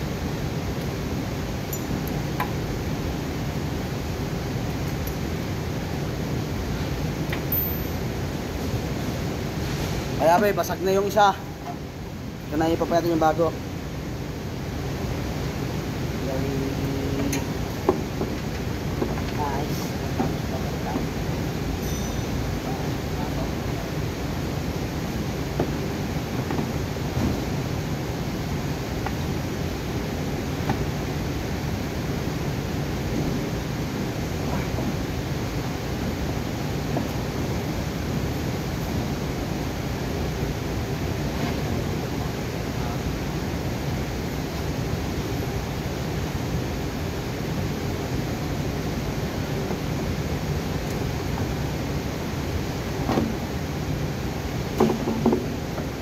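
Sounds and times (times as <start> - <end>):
workshop low hum: 0.0 - 46.8.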